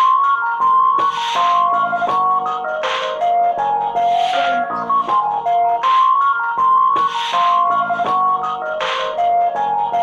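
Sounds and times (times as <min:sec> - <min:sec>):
electronic keyboard melody: 0:00.0 - 0:10.0.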